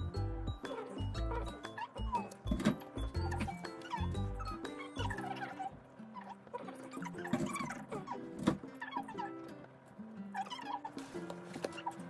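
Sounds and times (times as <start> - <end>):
light instrumental music: 0.0 - 12.0.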